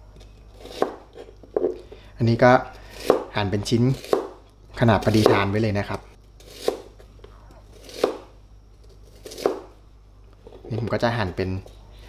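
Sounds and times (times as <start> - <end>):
knife chopping on plastic board: 0.6 - 1.8, 3.0 - 3.4, 4.0 - 4.4, 5.0 - 5.5, 7.8 - 8.3, 9.2 - 9.7.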